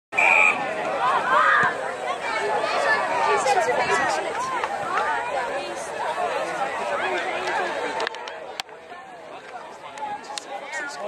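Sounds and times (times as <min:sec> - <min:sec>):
shouts and chatter of people: 0:00.2 - 0:11.0.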